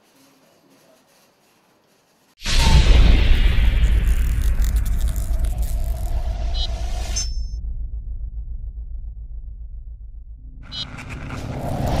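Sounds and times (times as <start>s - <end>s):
deep rumble: 2.5s - 12.0s
hum: 2.5s - 12.0s.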